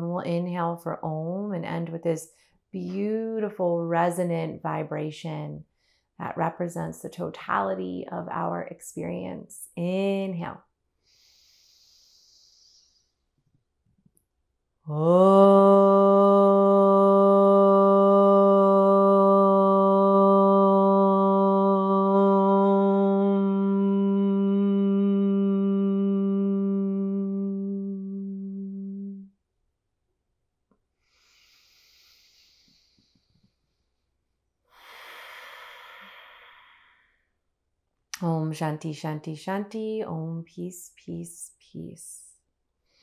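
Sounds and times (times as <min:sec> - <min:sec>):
woman breathing through mouth: 0:11.0 - 0:13.2, 0:31.0 - 0:33.8, 0:34.7 - 0:37.2
woman chanting om: 0:14.9 - 0:29.3.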